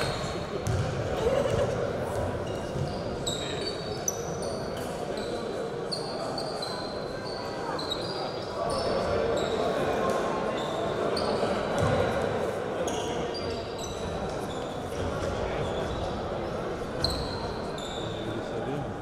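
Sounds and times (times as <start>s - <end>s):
murmur of voices: 0.0s - 19.0s
shoes squeaking on hardwood floor: 17.0s - 18.2s.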